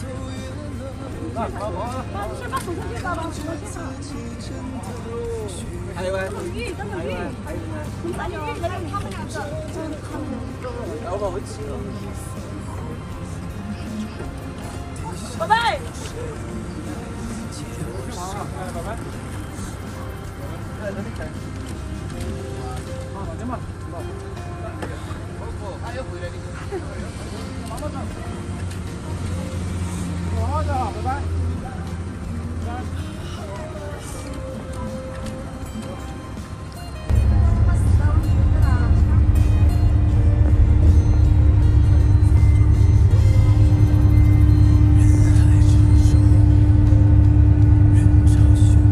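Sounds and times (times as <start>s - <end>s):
background music: 0.0s - 48.9s
bus engine idling: 0.0s - 48.9s
indistinct voices: 37.0s - 48.9s
steady hum: 37.1s - 48.9s.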